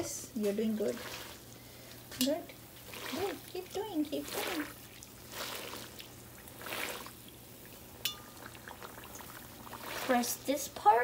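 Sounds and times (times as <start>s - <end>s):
hot oil sizzling: 0.2s - 11.0s
metal skimmer clinking on wok: 8.0s - 8.4s.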